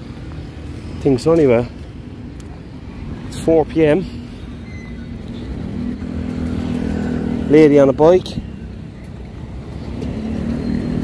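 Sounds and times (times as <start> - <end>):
city street traffic rumble: 0.0 - 11.0
small motorbike engine approaching: 4.8 - 7.6, 8.5 - 11.0.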